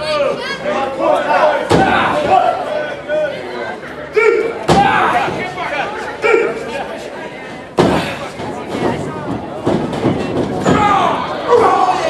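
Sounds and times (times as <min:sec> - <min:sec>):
spectators talking and calling out: 0:00.0 - 0:12.0
wrestlers impacting in ring: 0:01.7 - 0:02.5, 0:04.6 - 0:05.5, 0:07.8 - 0:11.8.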